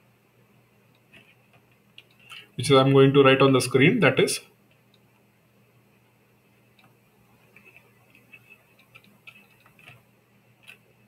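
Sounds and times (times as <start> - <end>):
stylus scratching on pen tablet: 7.4 - 10.0.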